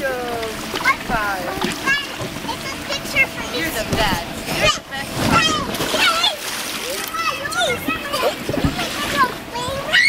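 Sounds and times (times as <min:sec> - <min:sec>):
water splashing: 0:00.0 - 0:10.0
children calling out: 0:04.7 - 0:10.0.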